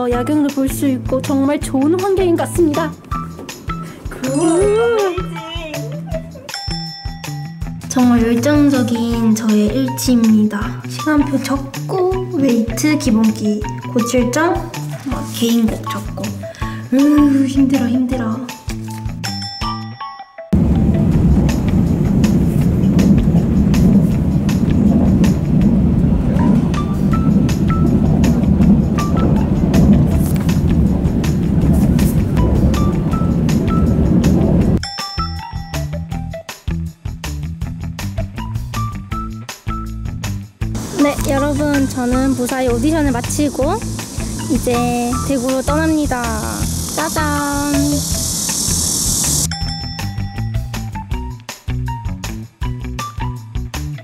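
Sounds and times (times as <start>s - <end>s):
train cabin rumble: 0.7s - 6.4s, 20.6s - 34.8s, 40.8s - 49.5s
music with low beat: 1.1s - 10.7s, 20.6s - 54.0s
high-pitched insect buzz: 40.8s - 49.5s.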